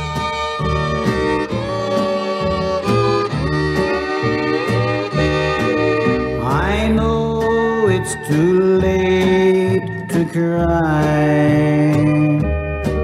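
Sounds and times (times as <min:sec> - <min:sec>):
fiddles playing melody: 0:00.0 - 0:06.9
low bass notes: 0:00.0 - 0:13.0
rhythm guitar: 0:00.0 - 0:13.0.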